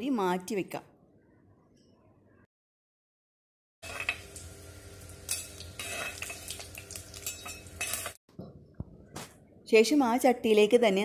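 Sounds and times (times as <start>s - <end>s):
spatula scraping in pot: 3.8s - 4.2s, 5.3s - 8.2s
chillies sizzling in hot oil: 3.8s - 8.2s.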